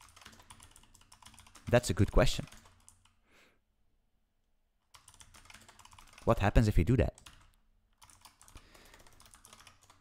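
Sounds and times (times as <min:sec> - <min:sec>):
typing on computer keyboard: 0:00.0 - 0:03.2, 0:04.9 - 0:06.4, 0:07.1 - 0:10.0.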